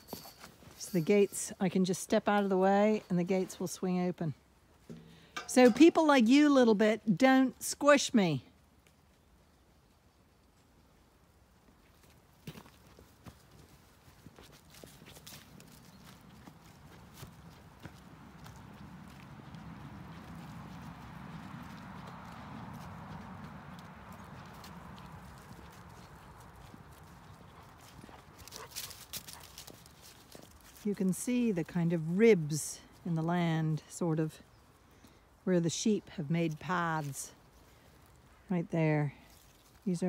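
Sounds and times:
footsteps on grass: 11.8s - 32.1s.

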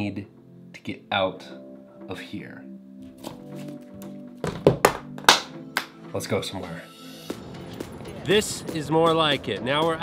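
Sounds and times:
background music: 0.0s - 10.0s
sharp loud hand claps: 4.8s - 6.0s.

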